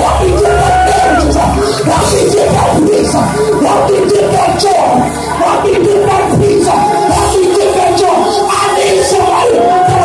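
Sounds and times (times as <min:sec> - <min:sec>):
congregation shouting and singing: 0:00.0 - 0:10.0
gospel praise music: 0:00.0 - 0:10.0.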